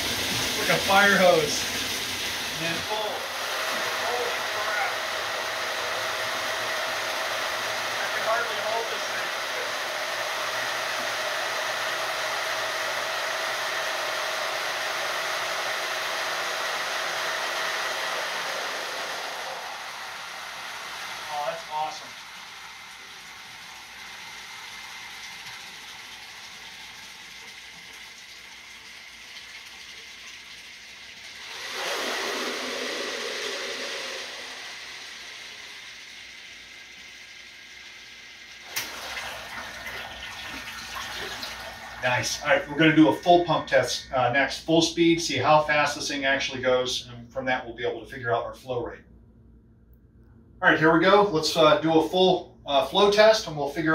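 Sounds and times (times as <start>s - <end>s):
water gushing into plastic drum: 0.0s - 43.3s
pump high whine: 0.0s - 49.0s.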